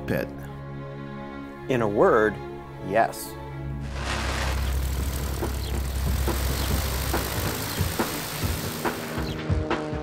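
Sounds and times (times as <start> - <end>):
light aircraft engine and propeller: 3.8 - 10.0.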